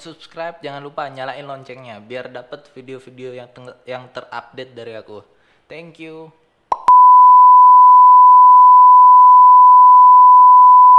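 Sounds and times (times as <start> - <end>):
loud electronic beep: 6.9 - 10.9.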